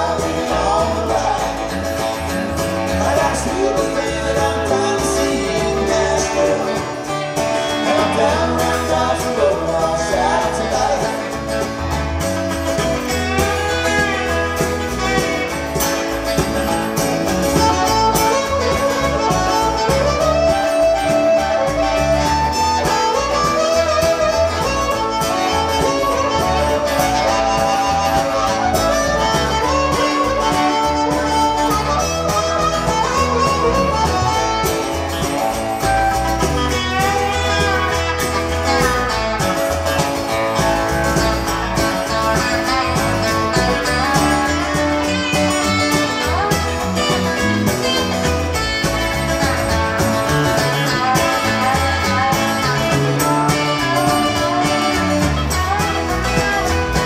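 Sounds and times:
acoustic guitar: 0.0s - 57.0s
bass guitar: 0.0s - 57.0s
electric guitar: 0.0s - 57.0s
harmonica solo: 11.1s - 57.0s.

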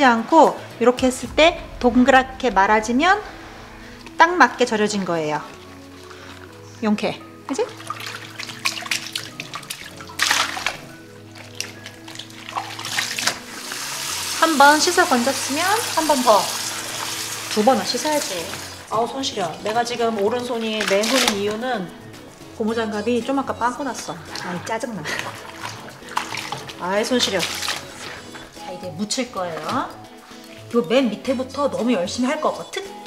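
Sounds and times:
water splashing in a sink: 7.5s - 22.0s, 22.9s - 31.3s
cabbage splashing in water: 7.6s - 13.6s, 20.5s - 21.6s, 25.0s - 28.3s
tap water running into sink: 12.2s - 18.9s.

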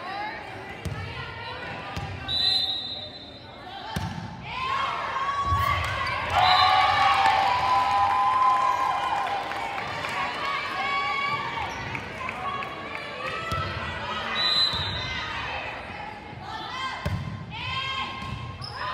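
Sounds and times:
volleyball hits: 3.9s - 4.4s
people shouting and cheering: 4.4s - 18.2s.

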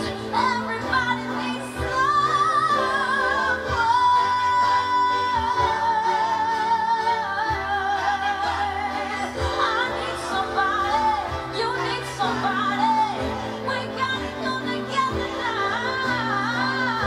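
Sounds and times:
string orchestra: 0.0s - 17.0s
woman singing with vibrato: 0.0s - 17.0s.

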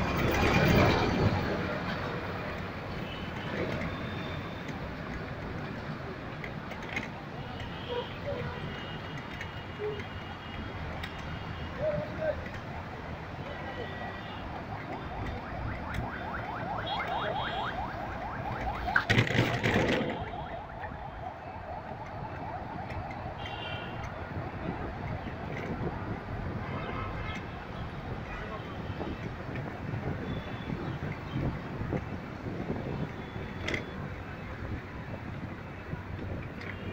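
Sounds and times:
engine and road noise: 0.0s - 36.9s.

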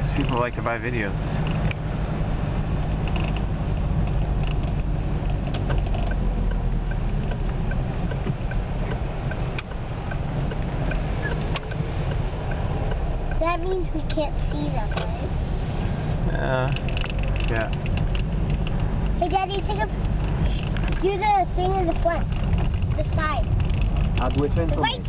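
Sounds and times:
turn signal ticking: 0.0s - 15.5s, 16.1s - 25.0s
car engine and tyre rumble: 0.0s - 25.0s.

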